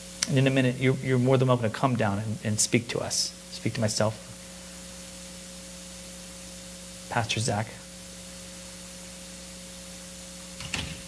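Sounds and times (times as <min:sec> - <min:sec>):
faint hiss: 0:00.0 - 0:11.0
steady low hum: 0:00.0 - 0:11.0
man talking: 0:00.2 - 0:04.3, 0:07.1 - 0:07.9.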